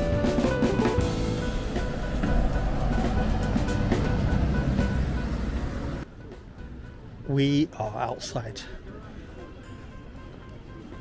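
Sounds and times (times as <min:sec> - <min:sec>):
bus engine passing: 0:00.0 - 0:07.2
background music: 0:00.0 - 0:11.0.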